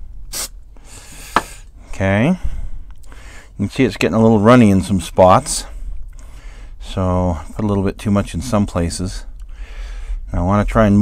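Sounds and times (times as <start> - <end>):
aerosol spray can hissing: 0.3 - 0.6.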